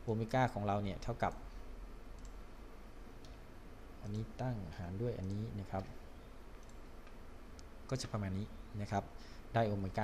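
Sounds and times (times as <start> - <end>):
faint computer mouse clicks: 2.2 - 2.4, 3.2 - 3.4, 5.2 - 7.7.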